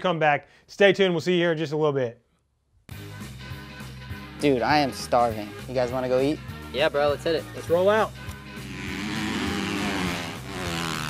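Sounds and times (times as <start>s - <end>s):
dirt bike engines revving: 8.5s - 11.0s.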